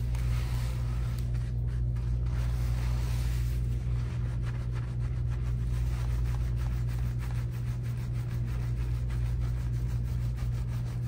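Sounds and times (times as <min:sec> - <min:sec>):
hands scrubbing lathered wet hair: 0:00.0 - 0:11.0
steady low hum: 0:00.0 - 0:11.0.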